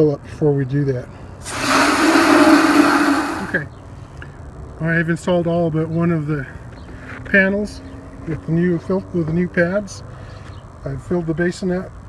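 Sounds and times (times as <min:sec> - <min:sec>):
hose spray hissing into metal basin: 0:01.4 - 0:03.6.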